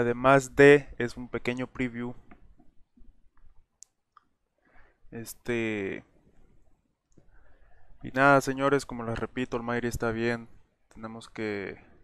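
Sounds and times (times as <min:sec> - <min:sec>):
faint low noises: 0:00.0 - 0:12.0.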